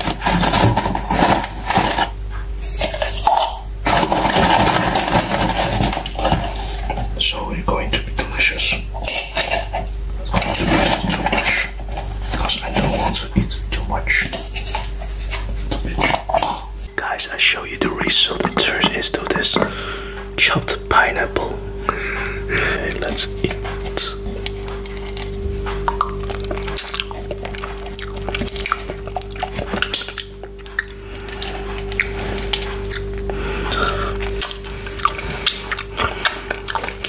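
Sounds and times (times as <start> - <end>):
frozen fruit rattling in plastic cup: 0.0 - 7.2, 8.6 - 13.5
close-up whispering: 7.2 - 8.9, 10.7 - 14.5, 16.9 - 21.7, 22.4 - 24.4
wet mouth sounds: 23.5 - 37.0.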